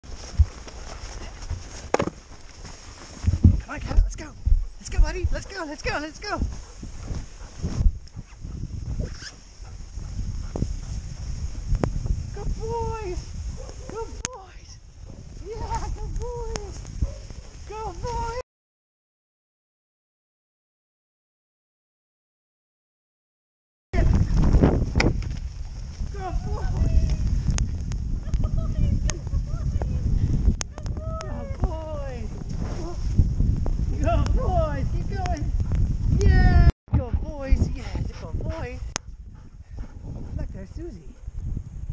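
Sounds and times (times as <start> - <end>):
wind rumbling on microphone: 0.0 - 18.4, 24.0 - 41.9
sliding over snow hiss: 0.1 - 3.5, 6.4 - 18.4.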